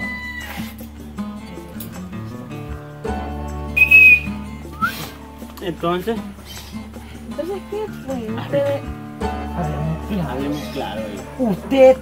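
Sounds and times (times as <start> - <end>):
background music: 0.0 - 12.0
loud high whistle: 3.8 - 5.0
short upward whistle: 3.8 - 5.1.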